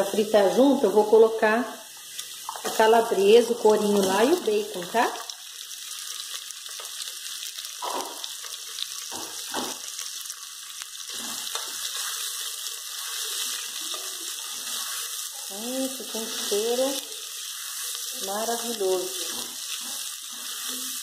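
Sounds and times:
meat sizzling in hot lard: 0.0 - 21.0
spatula scraping pot: 11.1 - 21.0.

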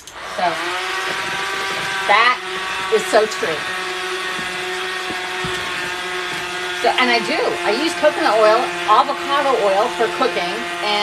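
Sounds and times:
electric hand mixer whirring: 0.0 - 11.0.

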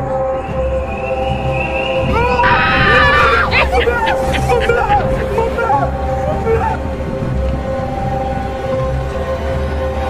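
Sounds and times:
background music: 0.0 - 10.0
voices shouting and yelling: 2.0 - 6.9.

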